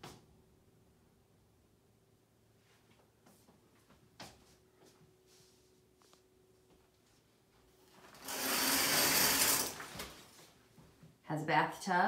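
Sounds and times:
curtain rings scraping on rod: 8.0 - 10.1.

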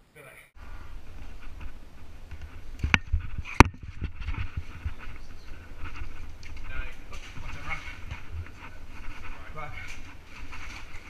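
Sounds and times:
faint scraping and rustling: 0.6 - 11.0
low rumbling of jostled microphone: 0.6 - 11.0.

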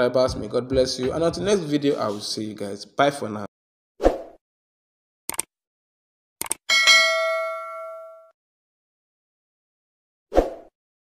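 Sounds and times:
notification bell chime: 6.7 - 8.3.

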